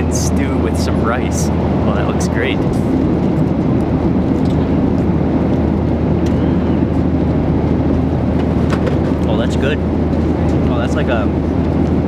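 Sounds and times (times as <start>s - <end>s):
airliner cabin engine rumble: 0.0s - 12.0s.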